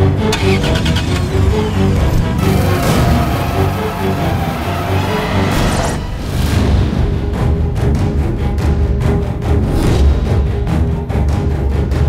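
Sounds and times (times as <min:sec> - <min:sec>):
engine ticking: 0:00.0 - 0:05.8
car engine starting and running: 0:00.0 - 0:07.6
dramatic background music: 0:00.0 - 0:12.0.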